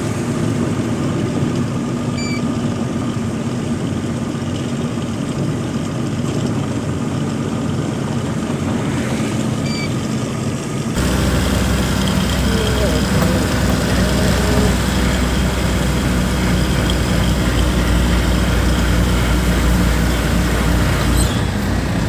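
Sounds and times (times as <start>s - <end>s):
truck engine and road noise: 0.0s - 22.0s
deep steady low hum: 7.8s - 22.0s.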